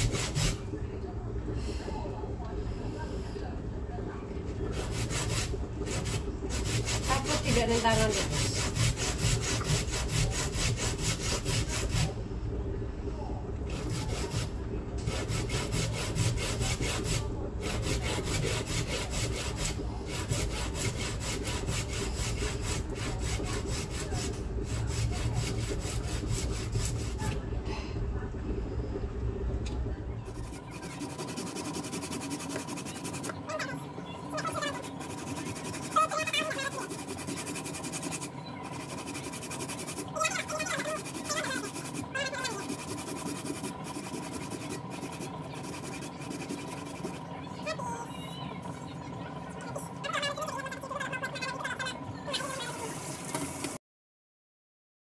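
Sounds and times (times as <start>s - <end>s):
grater rasping: 0.0s - 0.6s, 4.7s - 12.2s, 13.7s - 27.4s, 30.3s - 47.3s
low background hum: 0.0s - 53.8s
faint voice: 32.8s - 39.4s.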